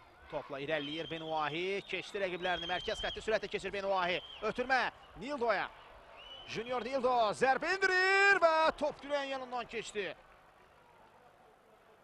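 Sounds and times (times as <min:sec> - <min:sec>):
man's voice: 0:06.6 - 0:10.1.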